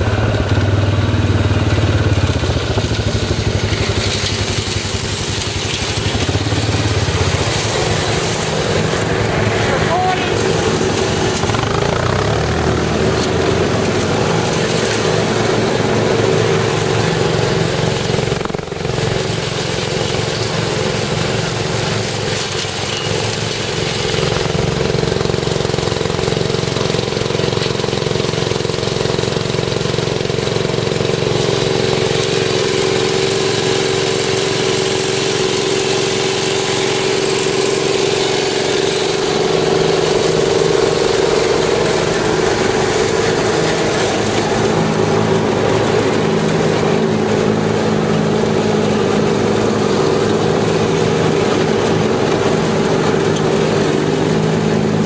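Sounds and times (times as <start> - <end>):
ride-on mower running: 0.0 - 55.0.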